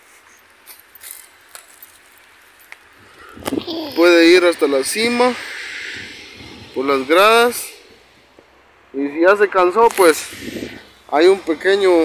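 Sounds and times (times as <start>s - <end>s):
low steady hiss: 0.0s - 12.0s
faint footsteps: 7.9s - 8.6s.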